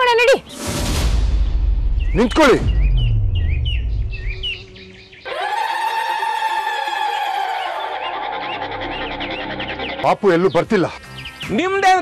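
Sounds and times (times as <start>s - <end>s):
birds chirping: 1.4s - 12.0s.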